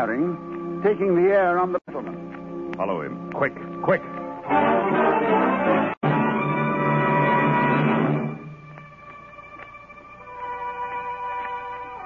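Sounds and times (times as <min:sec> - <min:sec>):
loud orchestral chord: 0:03.9 - 0:08.6.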